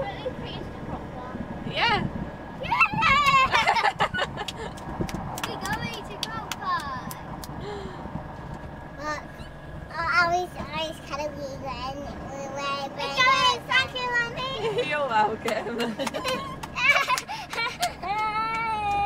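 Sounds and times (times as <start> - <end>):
lorry engine and road noise: 0.0 - 19.0
child talking and singing: 2.6 - 3.6, 5.4 - 7.3, 9.0 - 14.8.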